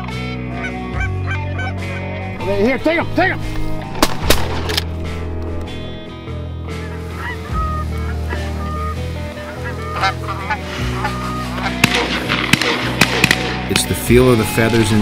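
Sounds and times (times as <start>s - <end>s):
geese honking: 0.0s - 3.4s, 6.6s - 15.0s
background music with bass: 0.0s - 15.0s.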